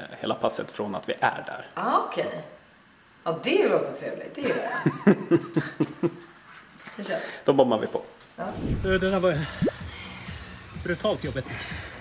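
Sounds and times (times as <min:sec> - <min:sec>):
woman laughing: 0:04.4 - 0:06.2.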